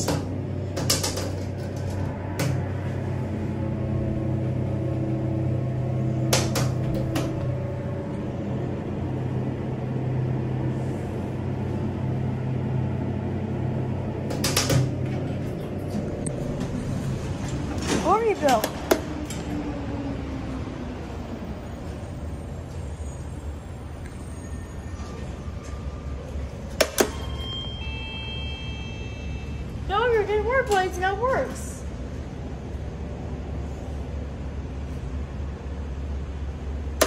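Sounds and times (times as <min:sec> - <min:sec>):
elevator clicks and clunks: 0:00.0 - 0:02.8, 0:06.0 - 0:08.2, 0:14.1 - 0:19.7
elevator machine hum: 0:00.0 - 0:37.0.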